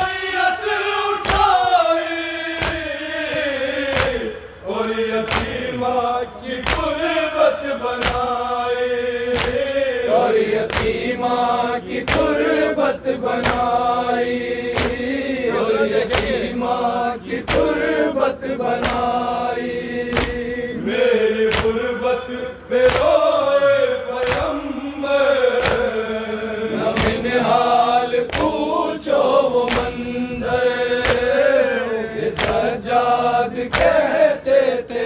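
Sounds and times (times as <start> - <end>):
men chanting a lament: 0.0 - 35.0.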